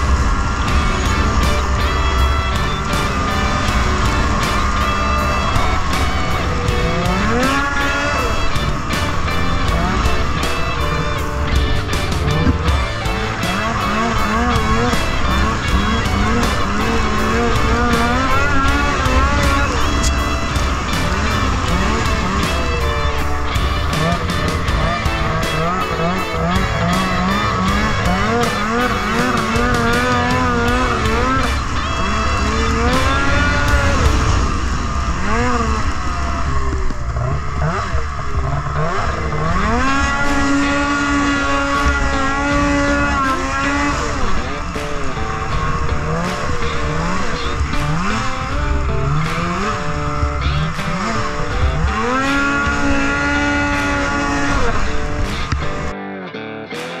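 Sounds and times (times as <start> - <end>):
snowmobile engine revving: 0.0 - 55.9.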